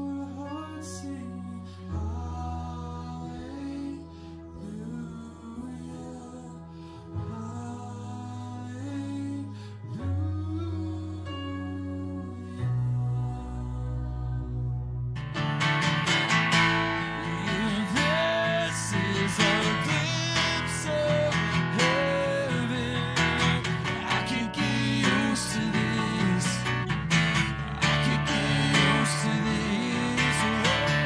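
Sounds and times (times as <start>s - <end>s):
man singing: 0.0s - 14.2s, 17.0s - 31.0s
acoustic guitar strumming: 15.2s - 31.0s.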